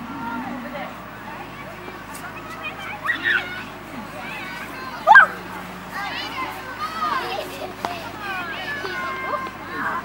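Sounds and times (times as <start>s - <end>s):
children calling and chattering: 0.0s - 10.0s
child shouting or squealing: 5.0s - 5.4s.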